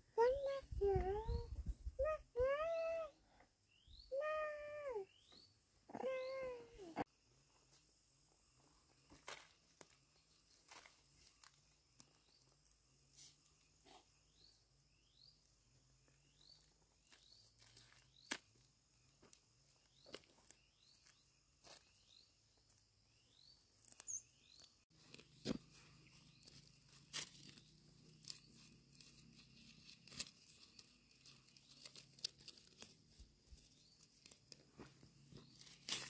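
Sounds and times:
child making whiny calls: 0:00.2 - 0:03.2, 0:04.1 - 0:05.2, 0:05.9 - 0:07.0
high insect hum: 0:03.6 - 0:36.0
dry leaves crackling: 0:25.0 - 0:34.7, 0:35.4 - 0:36.0.

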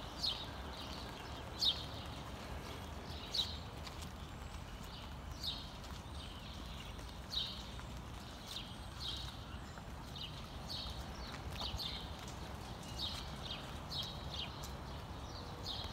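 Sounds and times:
bird chirping: 0:00.0 - 0:15.9.

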